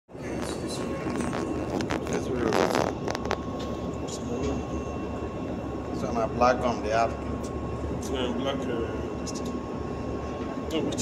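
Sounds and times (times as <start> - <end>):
faint steady whine: 0.1 - 11.0
low mechanical rumble: 0.1 - 11.0.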